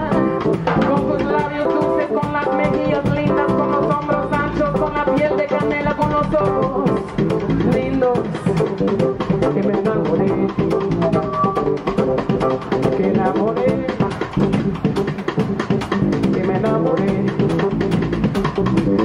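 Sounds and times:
piano: 0:00.0 - 0:16.0
double bass: 0:00.0 - 0:19.0
drum kit busy beat: 0:00.0 - 0:19.0.

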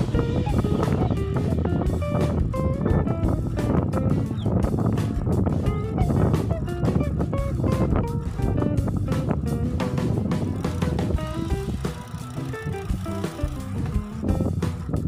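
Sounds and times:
background music with steady beat: 0:00.0 - 0:15.0.

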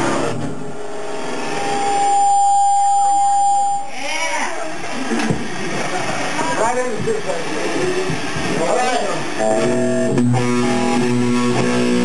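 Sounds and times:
amplifier feedback squeal: 0:00.0 - 0:04.4, 0:09.3 - 0:12.0
band electric guitars and bass: 0:07.4 - 0:12.0.

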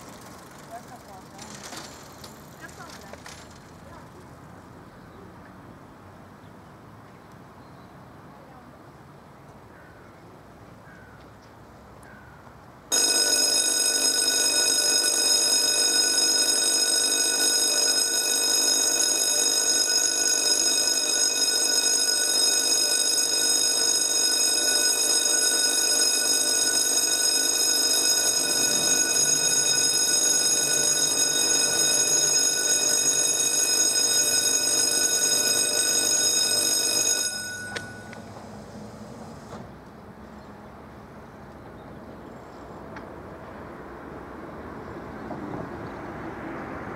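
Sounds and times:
level crossing warning bell: 0:00.0 - 0:03.4, 0:12.9 - 0:38.6.

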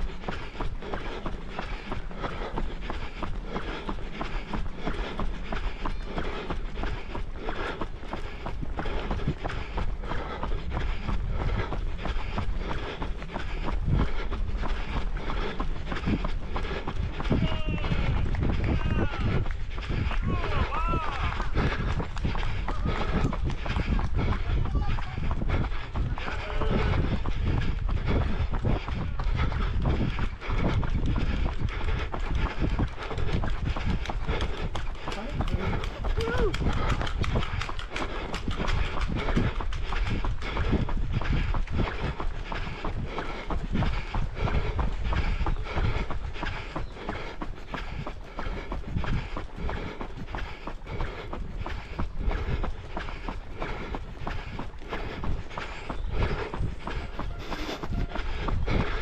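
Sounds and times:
running footsteps on pavement: 0:00.0 - 0:59.0
wind rumble on microphone: 0:00.0 - 0:59.0.

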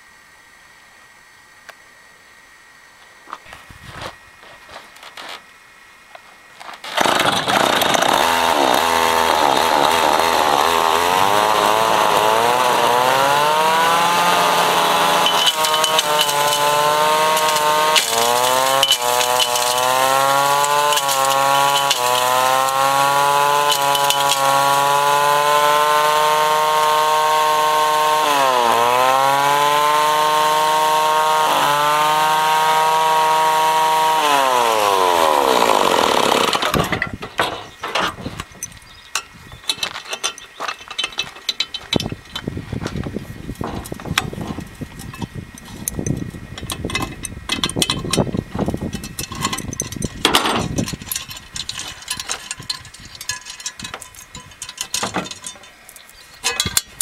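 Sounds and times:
mill grinding rock: 0:06.6 - 0:38.6, 0:39.2 - 0:57.0
chainsaw engine revving: 0:06.8 - 0:37.0.

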